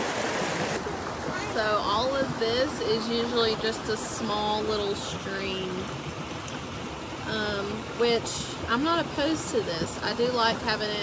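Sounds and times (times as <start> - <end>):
flooding creek rushing: 0.0 - 11.0.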